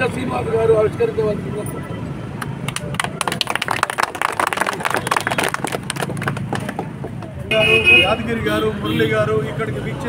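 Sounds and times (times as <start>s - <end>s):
crowd clapping: 2.4s - 7.4s.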